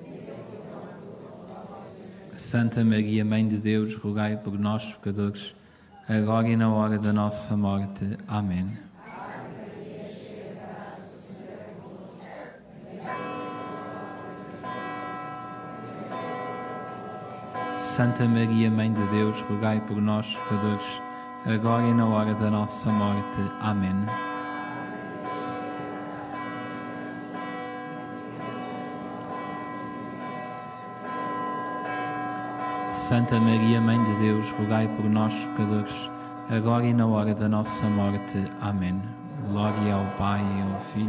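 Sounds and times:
church bells ringing: 0:06.1 - 0:08.7, 0:10.1 - 0:41.0.

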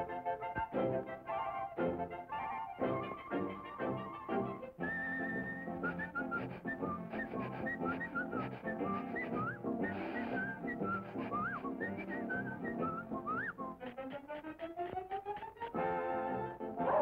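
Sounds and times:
whistled tune: 0:00.0 - 0:14.5
jaunty cartoon band music: 0:00.0 - 0:17.0.

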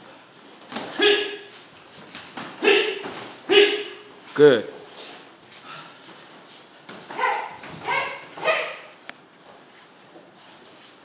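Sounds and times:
sharp shouts: 0:00.9 - 0:01.5, 0:02.6 - 0:04.1, 0:07.1 - 0:08.9.

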